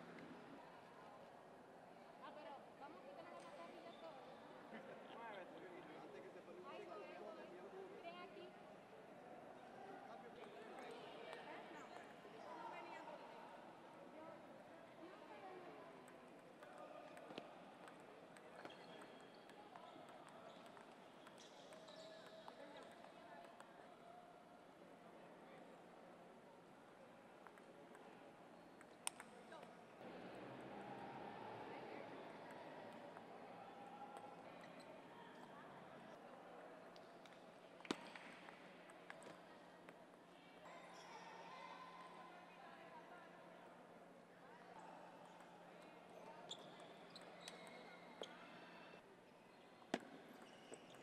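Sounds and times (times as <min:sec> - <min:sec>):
murmur of voices in a hall: 0:00.0 - 0:51.0
murmur of voices: 0:29.3 - 0:46.3.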